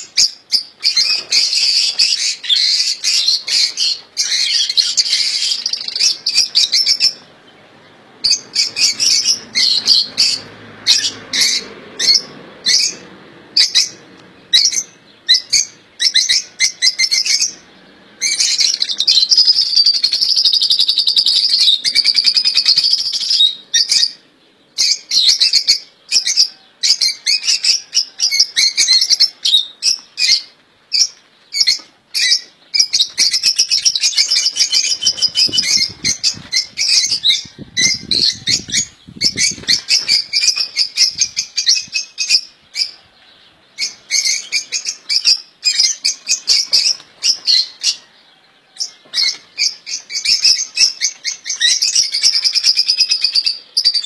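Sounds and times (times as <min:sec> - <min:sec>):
finches chirping and singing: 0:00.0 - 0:13.0, 0:13.6 - 0:54.0.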